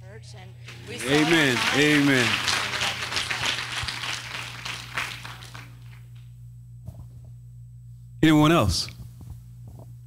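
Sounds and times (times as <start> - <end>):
steady low hum: 0.0 - 10.0
congregation applauding: 0.7 - 6.2.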